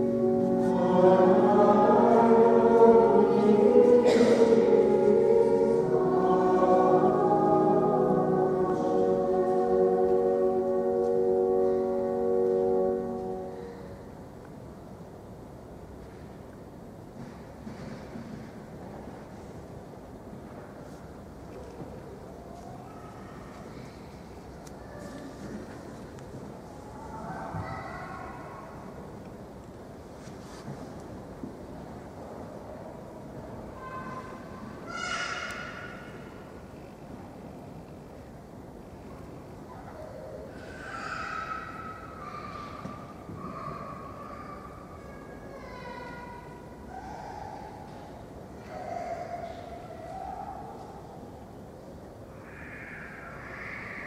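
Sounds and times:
distant choir singing: 0:00.0 - 0:15.8.

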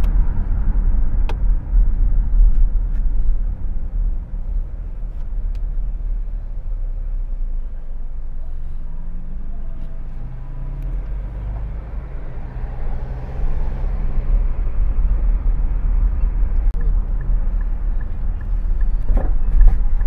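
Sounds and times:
turn signal ticking: 0:00.0 - 0:08.4, 0:09.5 - 0:20.0
engine and road rumble: 0:00.0 - 0:20.0.

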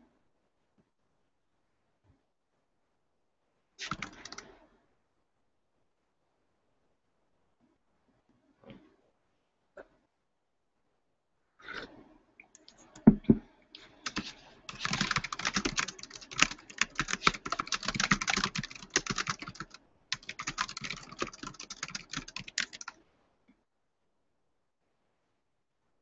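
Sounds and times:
typing on computer keyboard: 0:03.8 - 0:04.5, 0:14.0 - 0:23.0.

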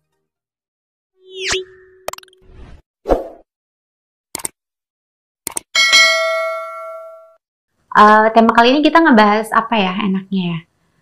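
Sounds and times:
bright bell ding: 0:05.8 - 0:07.4.

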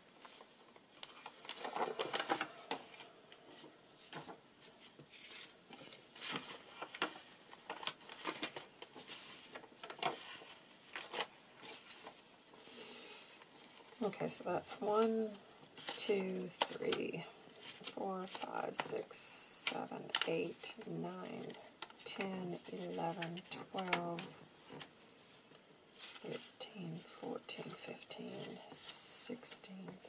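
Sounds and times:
paper rustling: 0:00.1 - 0:18.9, 0:19.5 - 0:29.1.

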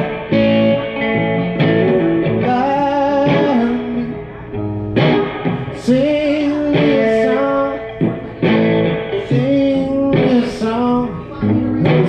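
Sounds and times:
electric guitar through amp: 0:00.0 - 0:12.0
man singing long notes: 0:01.9 - 0:04.6, 0:05.5 - 0:08.4, 0:09.2 - 0:12.0.

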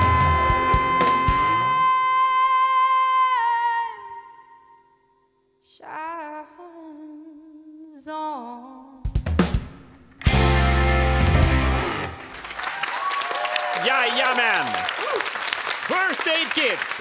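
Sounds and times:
woman singing: 0:00.0 - 0:05.0, 0:05.6 - 0:09.2
quiet guitar: 0:10.2 - 0:12.3
applause: 0:12.1 - 0:17.0.

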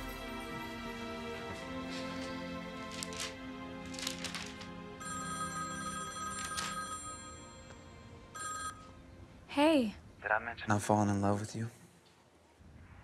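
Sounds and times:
soft background music: 0:00.0 - 0:11.8
cell phone ringtone: 0:05.0 - 0:09.0.

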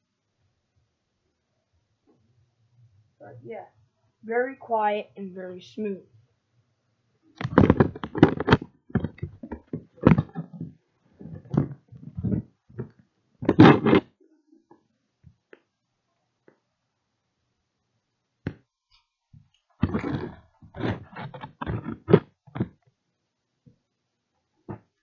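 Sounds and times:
loud clicks and thumps: 0:07.4 - 0:14.1, 0:19.8 - 0:22.8.

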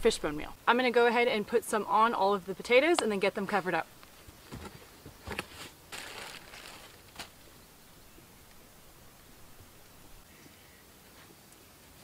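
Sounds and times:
short rustle: 0:04.1 - 0:07.5.

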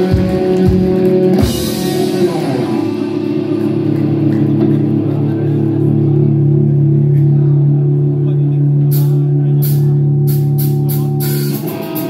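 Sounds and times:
rock band sustained chord: 0:00.0 - 0:12.0.

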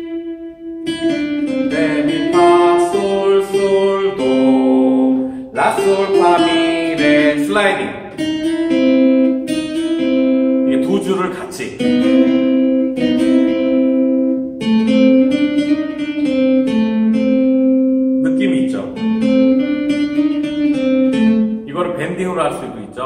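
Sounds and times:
scratchy guitar string noises: 0:00.0 - 0:17.4
acoustic guitar melody: 0:00.0 - 0:23.0.

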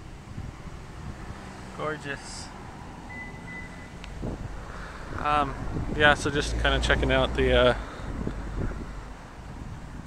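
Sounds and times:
traffic rumble: 0:00.0 - 0:10.0
wind on microphone: 0:04.1 - 0:10.0.

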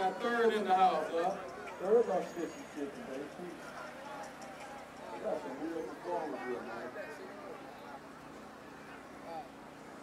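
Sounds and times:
murmur of outdoor crowd: 0:00.0 - 0:10.0
people talking nearby: 0:00.0 - 0:10.0.

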